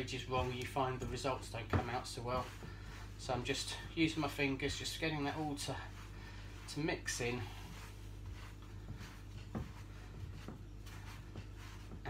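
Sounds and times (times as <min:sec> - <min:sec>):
fingers rubbing sticky dough: 0:00.0 - 0:12.0.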